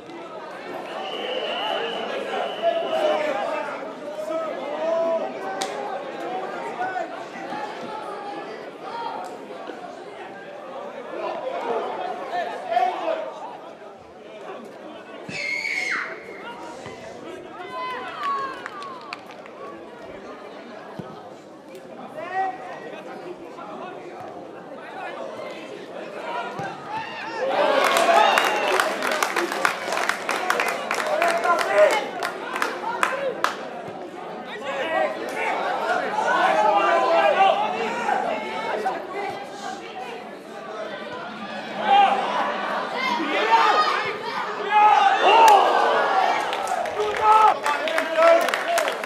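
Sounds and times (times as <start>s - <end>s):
faint background chatter: 0.0s - 49.0s
spectators talking and calling out: 0.0s - 49.0s.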